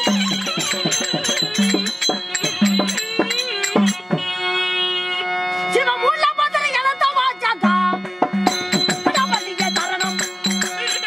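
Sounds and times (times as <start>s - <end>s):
drum strokes: 0.0s - 4.4s, 7.9s - 11.0s
person singing ornamented melody: 9.0s - 11.0s.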